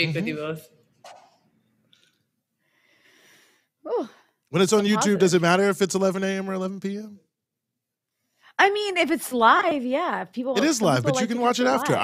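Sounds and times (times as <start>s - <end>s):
person saying ooh: 4.8s - 5.4s.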